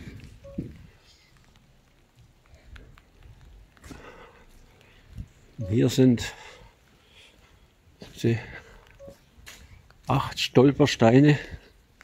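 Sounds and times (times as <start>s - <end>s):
short beep: 0.4s - 0.7s, 5.6s - 6.0s
man's voice: 5.6s - 6.4s.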